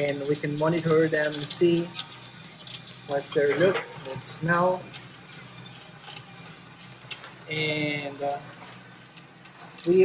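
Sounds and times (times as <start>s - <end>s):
coffee roaster humming: 0.0s - 10.0s.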